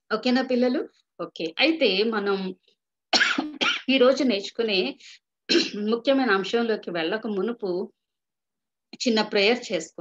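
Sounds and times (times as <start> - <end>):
woman speaking over video call: 0.0 - 10.0.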